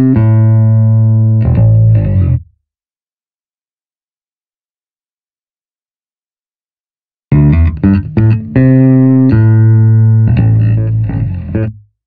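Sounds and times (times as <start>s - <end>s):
electric bass notes: 0.0s - 2.5s, 7.3s - 11.9s.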